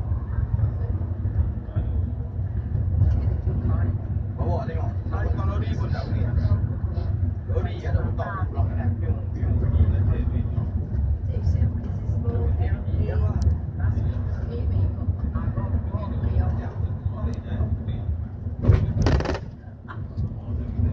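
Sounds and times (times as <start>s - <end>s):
bus engine and tyres rumbling: 0.0s - 20.9s
people talking: 11.2s - 18.1s
loud clatter: 18.6s - 19.6s.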